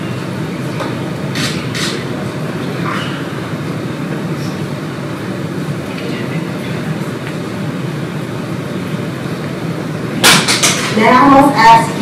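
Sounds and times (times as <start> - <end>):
faint voices murmuring: 0.1 - 10.2.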